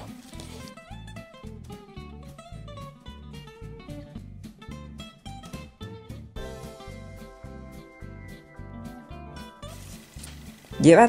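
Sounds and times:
plucked notes over bass line: 0.9 - 9.9.

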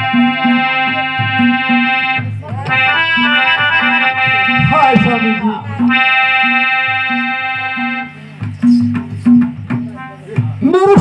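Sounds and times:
held organ-like chord: 0.0 - 8.2
low bass line: 4.2 - 6.0.

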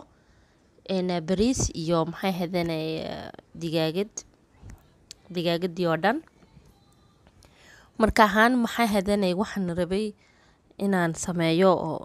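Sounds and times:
woman speaking: 0.8 - 6.9, 7.9 - 10.2, 10.8 - 12.0
soft breath hiss: 6.2 - 8.1.

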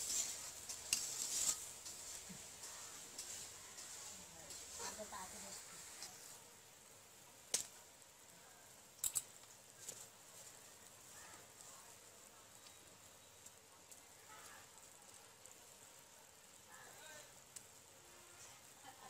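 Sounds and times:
curry bubbling in a pot: 0.0 - 19.0.

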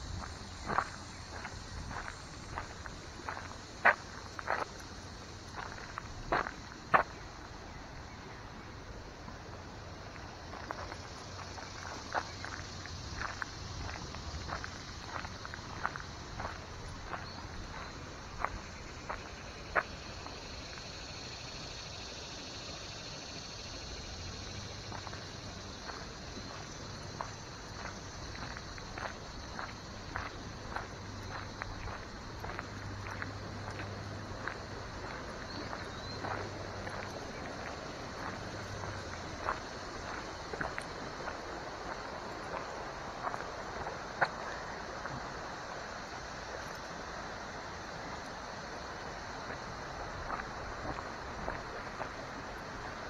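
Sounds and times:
footsteps on gravel: 0.0 - 7.2, 10.1 - 20.1, 24.9 - 45.2, 49.2 - 53.0.

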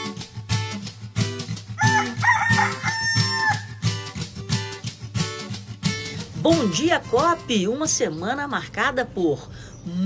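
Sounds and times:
strummed acoustic guitar jingle: 0.0 - 7.9
rooster crowing: 1.8 - 3.9.

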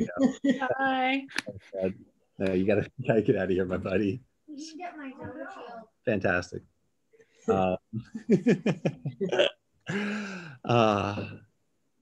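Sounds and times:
man laughing: 0.0 - 0.7, 7.5 - 11.4.

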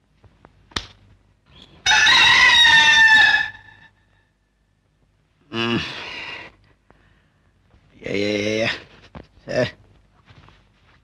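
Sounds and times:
rooster crowing: 1.8 - 4.1.

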